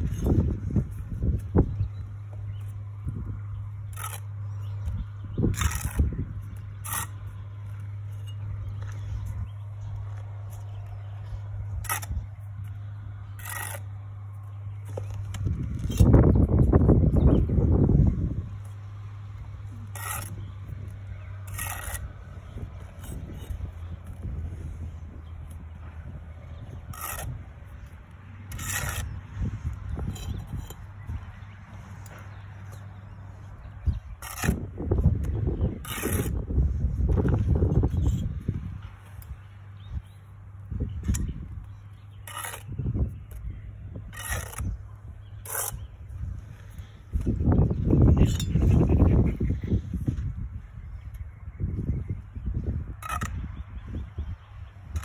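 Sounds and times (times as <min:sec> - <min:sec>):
trowel scraping on bricks: 0:00.0 - 0:40.2, 0:40.9 - 0:49.9, 0:53.0 - 0:54.2
steady low hum: 0:00.0 - 0:55.0.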